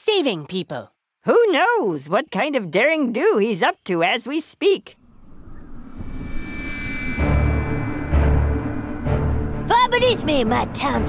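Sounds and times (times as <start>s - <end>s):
faint held tones: 5.0s - 9.7s
rumbling wind-like rush: 5.0s - 10.6s.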